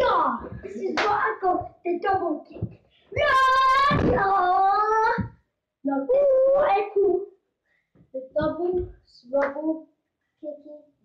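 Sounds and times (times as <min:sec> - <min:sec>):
boy chanting: 0:00.0 - 0:07.3, 0:08.2 - 0:10.9.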